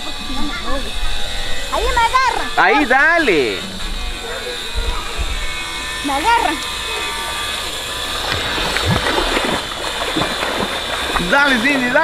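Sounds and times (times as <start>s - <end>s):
water splashing from swimmer: 8.0s - 12.0s.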